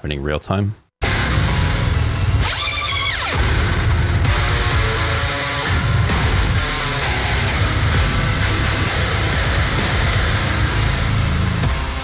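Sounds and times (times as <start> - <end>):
heavy metal music: 1.0 - 12.0.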